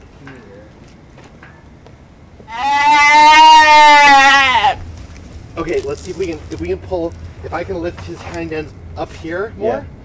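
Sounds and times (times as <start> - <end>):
deer bleating: 2.5 - 4.8.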